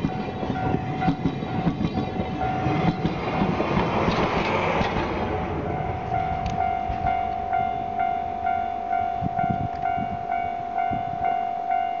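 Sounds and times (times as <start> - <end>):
level crossing warning bell: 0.0 - 3.2, 5.6 - 12.0
train rumble: 0.0 - 12.0.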